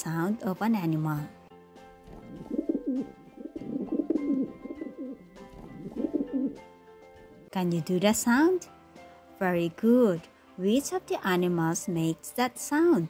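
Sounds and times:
soft background music: 0.0 - 13.0
pigeon cooing: 2.0 - 6.7.

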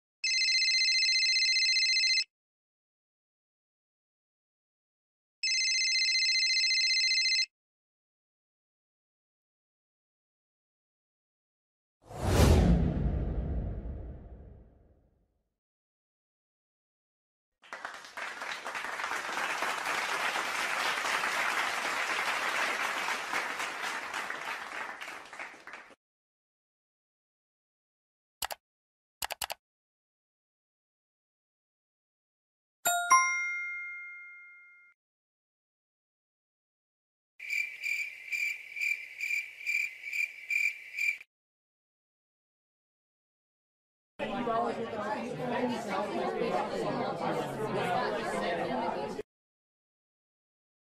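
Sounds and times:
whoosh with deep low tail: 12.2 - 14.6
crickets chirping: 37.4 - 41.2.

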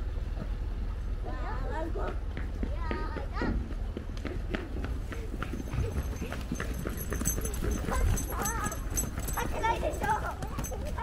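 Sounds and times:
footsteps on hard pavement: 2.0 - 11.0.

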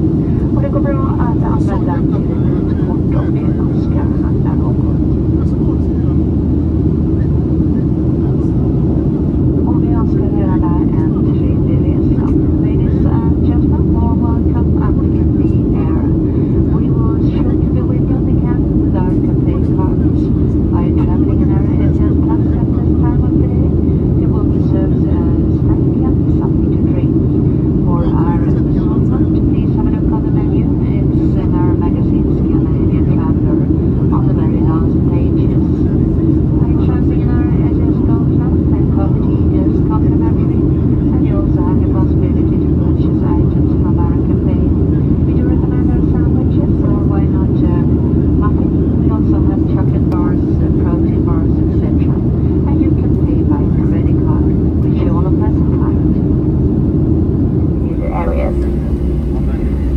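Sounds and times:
airplane cabin engine roar: 0.0 - 59.9
faint voices: 0.1 - 42.6, 57.7 - 59.9.

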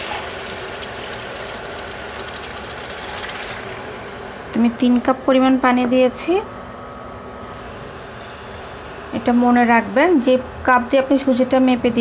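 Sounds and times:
pan simmering with steady hiss: 0.0 - 6.8.

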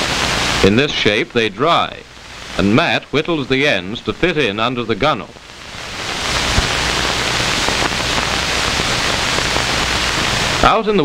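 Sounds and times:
steady rushing hiss: 0.0 - 11.0.

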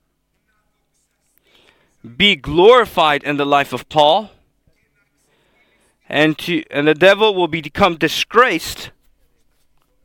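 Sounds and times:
faint breath: 1.4 - 2.0, 5.2 - 6.0.

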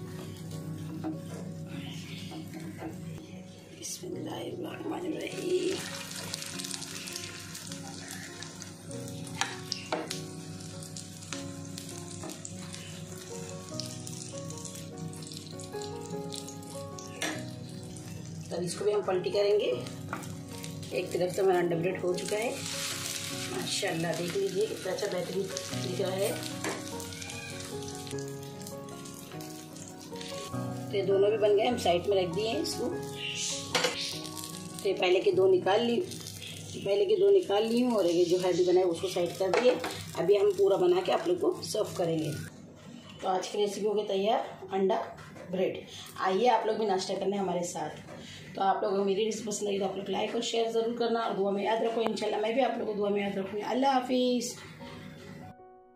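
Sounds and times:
background music: 0.0 - 43.0, 50.0 - 55.9
bread frying in oil: 5.2 - 18.8, 19.9 - 30.5, 34.2 - 42.5.

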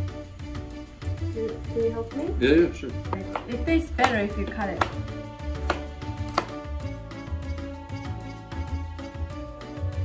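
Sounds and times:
background music: 0.0 - 10.0
knife chopping on wooden board: 3.1 - 6.7.

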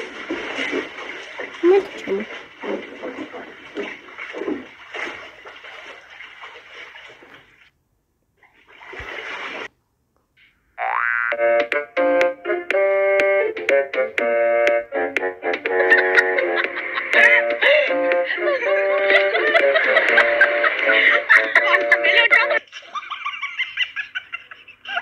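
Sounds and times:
water splashing: 0.0 - 7.8, 8.4 - 9.7, 15.9 - 22.6
voices: 1.6 - 3.8
music with piano-like notes: 11.4 - 22.6.

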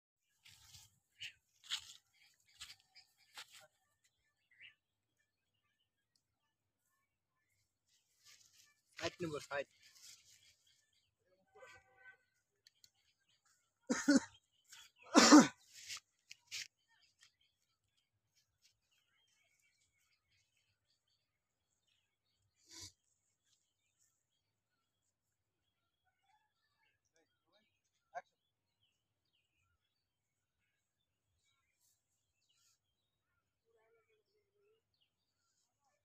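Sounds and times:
footsteps on dry leaves: 0.4 - 3.6.

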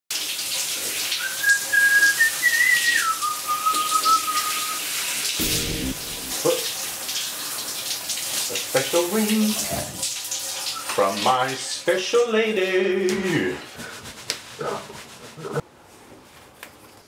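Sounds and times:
shower spraying water: 0.1 - 13.0
person whistling: 1.4 - 4.8
brief low sound: 5.4 - 6.8.

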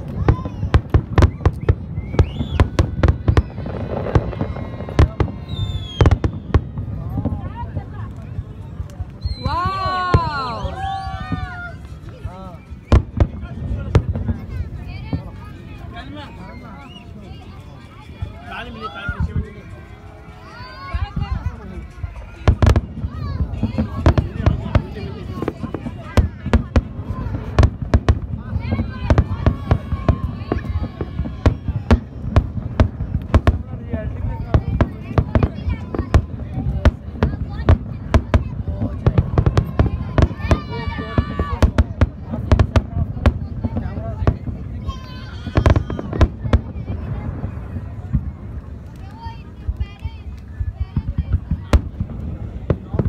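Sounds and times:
fireworks bangs and rumble: 0.0 - 53.0
people's voices: 0.0 - 53.0.

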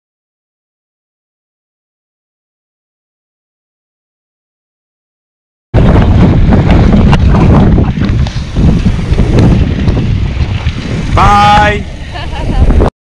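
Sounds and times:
wind buffeting microphone: 5.8 - 12.9
person speaking: 11.2 - 11.9.

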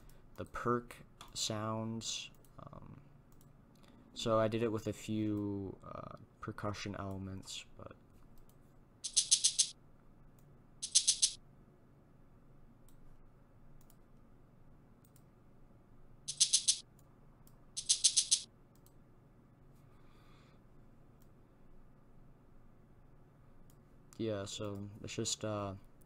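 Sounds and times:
rapid rattling percussion rolls: 9.1 - 9.7, 10.8 - 11.4, 16.3 - 16.8, 17.8 - 18.4.

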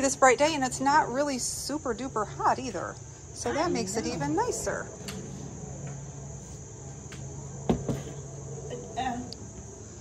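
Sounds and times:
insects chirring: 0.0 - 10.0.

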